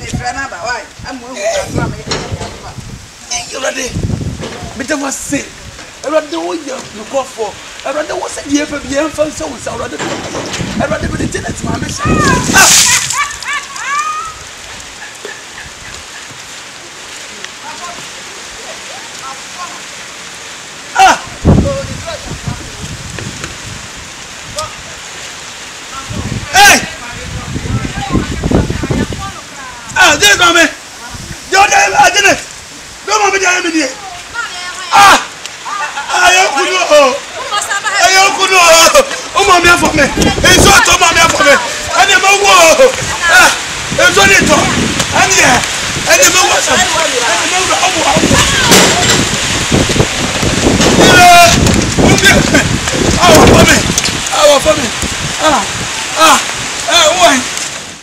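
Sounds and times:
wind buffeting microphone: 0:00.0 - 0:17.2, 0:21.2 - 0:33.0, 0:37.2 - 0:58.0
rain falling: 0:00.0 - 0:58.0
high-pitched yell: 0:12.0 - 0:14.4, 0:48.2 - 0:49.3.

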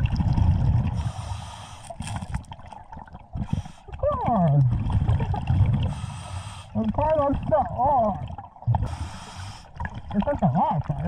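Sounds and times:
bubbles gurgling underwater: 0:00.0 - 0:06.2, 0:06.8 - 0:11.0
regulator breathing hisses: 0:08.9 - 0:09.7.

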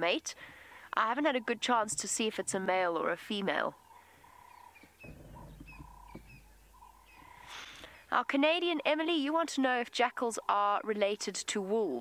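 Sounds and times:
faint bird chirps: 0:03.7 - 0:08.9
low steady rumble: 0:05.0 - 0:09.0.

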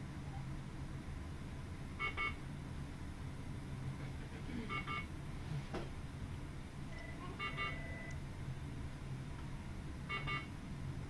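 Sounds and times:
low equipment hum: 0:00.0 - 0:11.0
patient monitor beeping: 0:02.0 - 0:02.4, 0:04.6 - 0:05.1, 0:06.9 - 0:08.2, 0:10.1 - 0:10.5.

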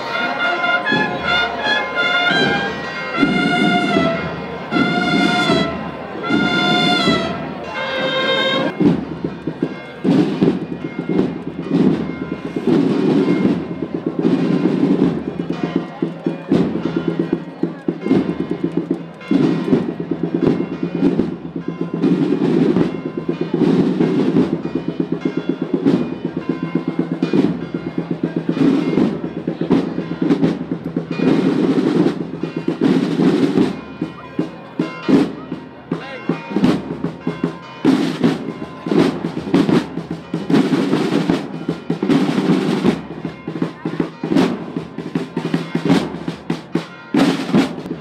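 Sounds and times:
marching drums with drum rolls: 0:00.0 - 0:48.0.

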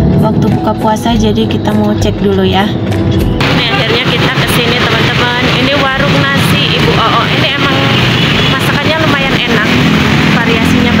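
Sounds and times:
car engines passing: 0:00.0 - 0:11.0
motorcycle engines passing: 0:00.0 - 0:11.0
people's voices: 0:00.0 - 0:11.0.

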